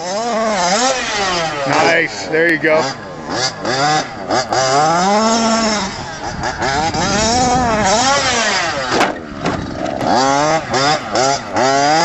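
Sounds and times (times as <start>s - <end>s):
small engine revving: 0.0s - 12.0s.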